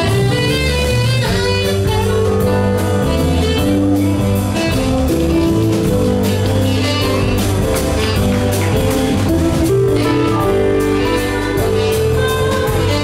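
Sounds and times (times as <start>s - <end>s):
bass line: 0.0s - 13.0s
drum beat: 0.0s - 13.0s
electric guitar: 0.0s - 13.0s.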